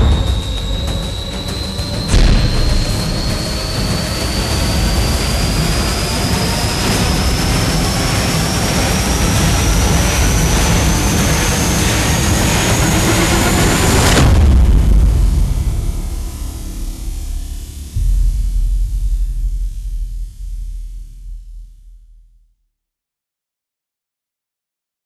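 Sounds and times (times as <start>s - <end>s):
rising roar with high whine: 0.0s - 22.0s
deep boom: 0.0s - 22.4s.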